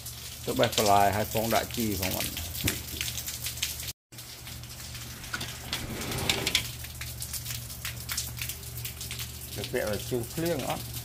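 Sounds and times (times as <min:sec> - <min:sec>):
rain falling on a wet patio: 0:00.0 - 0:11.0.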